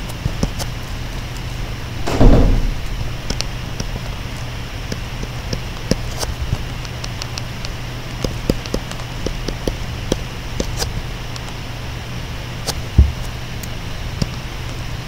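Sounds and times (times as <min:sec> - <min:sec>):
low electrical hum: 0:00.0 - 0:15.0
dull thump: 0:01.9 - 0:03.1.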